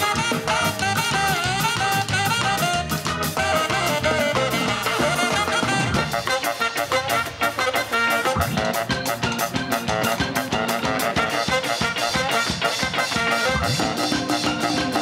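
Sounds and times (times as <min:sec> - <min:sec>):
drum kit steady beat: 0:00.0 - 0:15.0
guitar: 0:00.0 - 0:15.0
horn section playing: 0:00.0 - 0:15.0
keyboard: 0:00.0 - 0:15.0.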